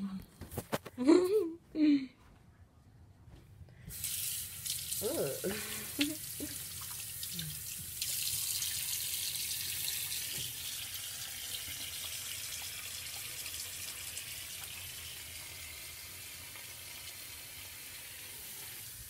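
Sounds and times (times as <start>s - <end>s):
soapy hands washing: 3.9s - 19.0s
tap water running into sink: 3.9s - 19.0s.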